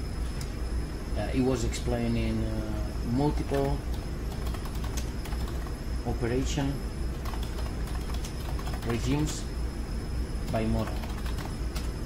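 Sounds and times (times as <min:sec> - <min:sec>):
steady low hum: 0:00.0 - 0:12.0
computer keyboard keys clicking: 0:03.4 - 0:05.7, 0:07.2 - 0:09.3, 0:10.5 - 0:12.0.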